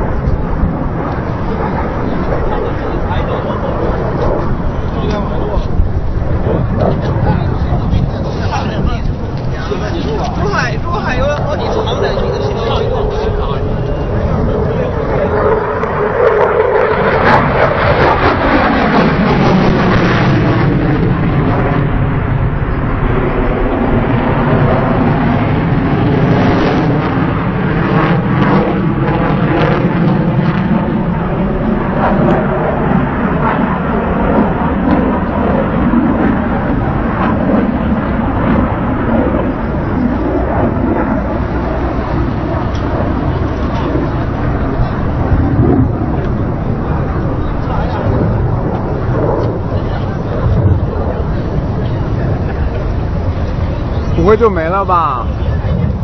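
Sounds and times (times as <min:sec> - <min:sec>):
aircraft engine passing overhead: 0:00.0 - 0:56.0.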